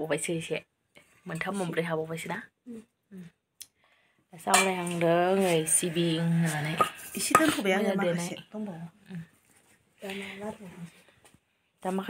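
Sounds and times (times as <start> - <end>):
woman speaking: 1.3 - 2.5, 4.4 - 9.3, 10.0 - 10.9
steel kitchenware clinking: 4.5 - 5.0, 6.7 - 7.7.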